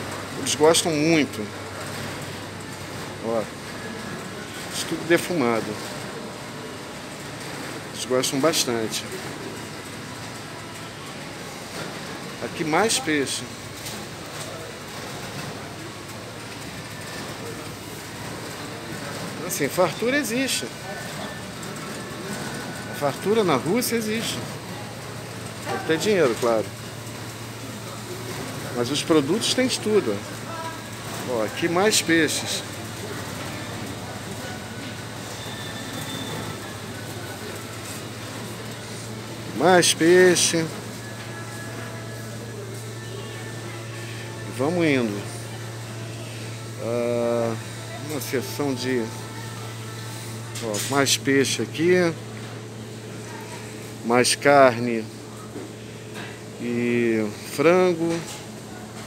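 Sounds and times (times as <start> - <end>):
faint voices: 0.0 - 59.0
ventilation hum and hiss: 0.0 - 59.0.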